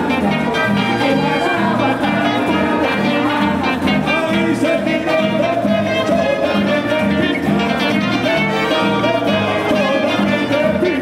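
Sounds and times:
hand drums steady beat: 0.0s - 11.0s.

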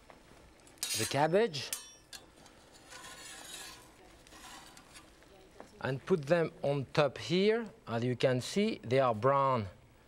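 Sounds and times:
utensils scraping and rustling: 0.8s - 5.1s.

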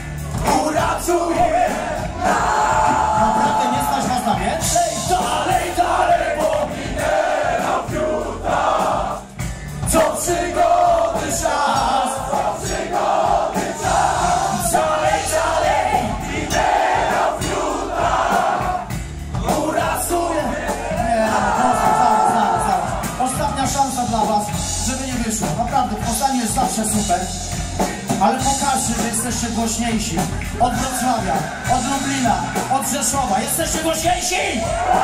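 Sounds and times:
crowd shouting and singing along: 0.0s - 35.0s
heavy metal band playing live: 0.0s - 35.0s.

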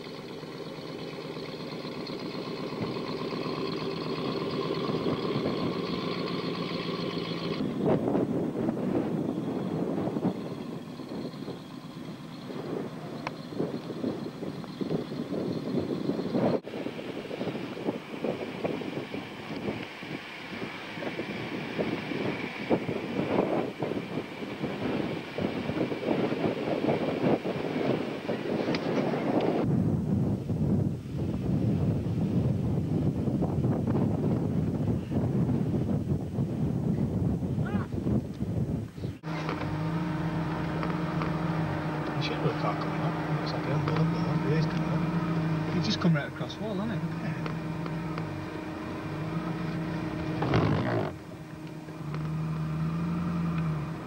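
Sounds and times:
car engine running: 0.0s - 29.7s, 30.8s - 54.0s
rough noisy rush: 39.2s - 54.0s.

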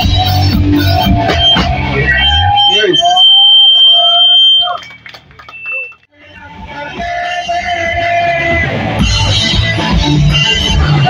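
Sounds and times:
punk band playing live: 0.0s - 2.5s, 5.5s - 11.0s.

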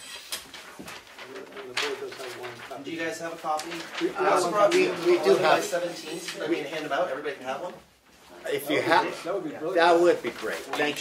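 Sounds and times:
paper map rustling and crackling: 0.4s - 11.0s.

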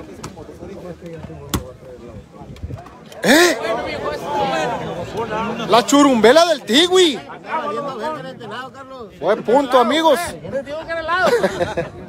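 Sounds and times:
outdoor crowd chatter: 0.0s - 12.0s.

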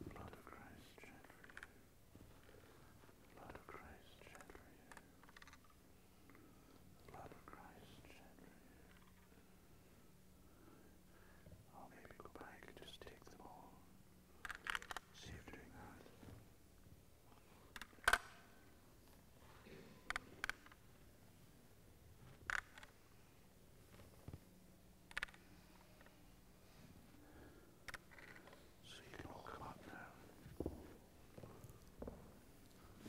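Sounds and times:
whispering voices: 0.0s - 1.8s, 3.3s - 5.2s, 7.0s - 9.0s, 11.7s - 13.9s, 15.1s - 16.3s, 28.8s - 30.4s.

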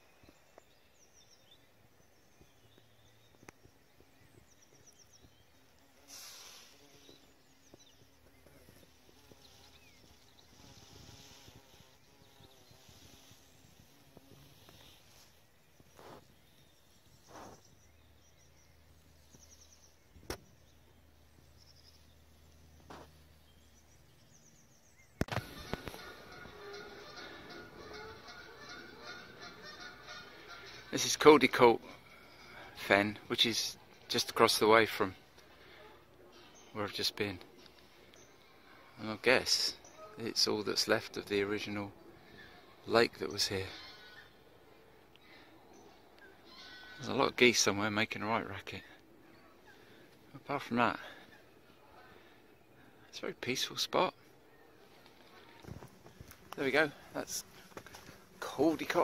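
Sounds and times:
geese honking: 25.3s - 31.6s.

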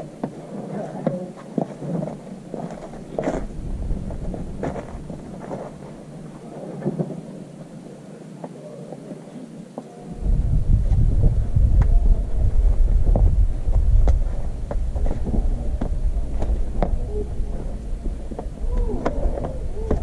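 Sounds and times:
hands and shoes scraping rock: 0.2s - 6.0s, 12.7s - 17.7s
wind buffeting microphone: 2.0s - 7.0s, 10.1s - 20.0s.

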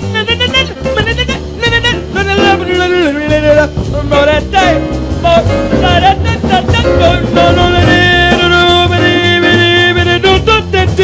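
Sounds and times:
drum kit: 0.0s - 11.0s
jazz band playing: 0.0s - 11.0s
woman singing jazz: 0.0s - 11.0s.

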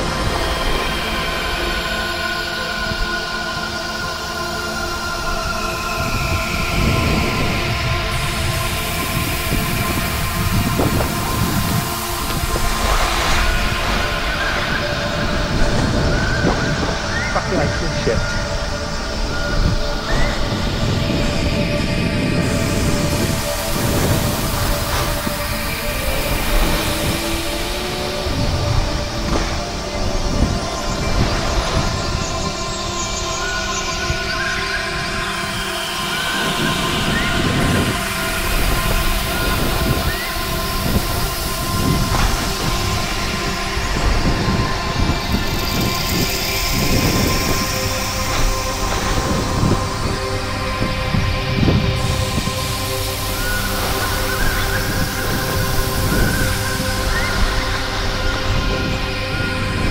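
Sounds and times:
wind buffeting microphone: 5.0s - 59.9s.

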